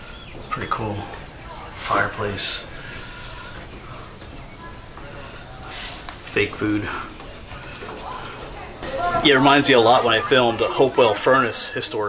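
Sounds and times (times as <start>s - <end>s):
faint indistinct voices: 0.0s - 12.0s
low background noise: 0.0s - 12.0s.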